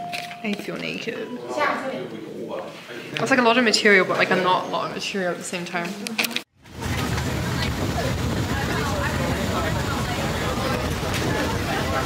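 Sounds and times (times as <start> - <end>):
faint voices: 3.8 - 12.0
vehicle road noise: 6.6 - 12.0.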